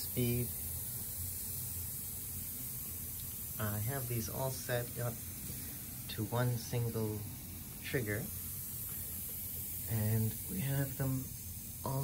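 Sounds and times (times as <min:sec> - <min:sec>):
compressed air hissing: 0:00.0 - 0:12.0.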